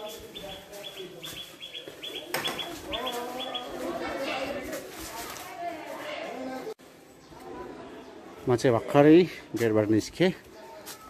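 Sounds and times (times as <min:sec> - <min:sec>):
small bird chirping: 0:00.0 - 0:03.8.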